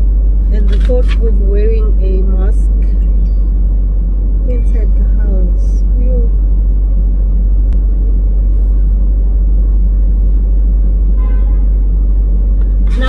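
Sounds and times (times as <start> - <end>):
low rumble in car cabin: 0.0 - 13.0.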